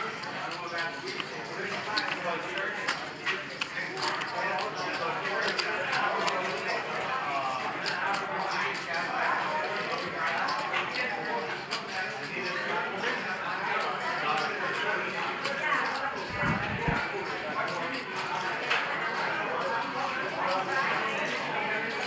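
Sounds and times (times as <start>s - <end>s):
background chatter of voices: 0.0s - 22.0s.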